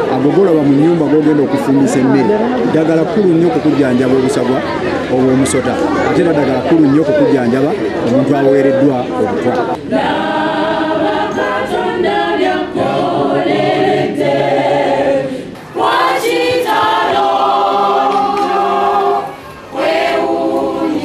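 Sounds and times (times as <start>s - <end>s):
choir singing a hymn: 0.0s - 21.0s.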